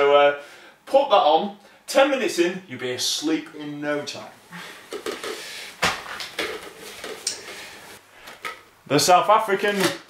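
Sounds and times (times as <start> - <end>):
objects knocking and clattering: 4.9 - 7.6.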